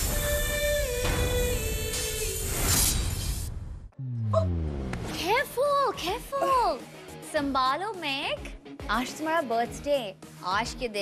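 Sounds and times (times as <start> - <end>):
low tone sliding down: 4.0 - 5.2.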